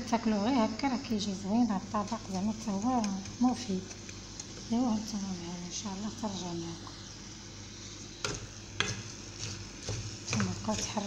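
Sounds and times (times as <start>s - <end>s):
food sizzling in oil: 0.0s - 11.0s
wooden spoon stirring rice: 8.2s - 11.0s.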